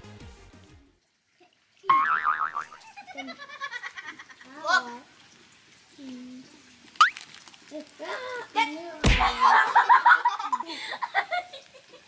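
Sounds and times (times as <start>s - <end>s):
cartoon boing springy twang: 1.9s - 2.8s.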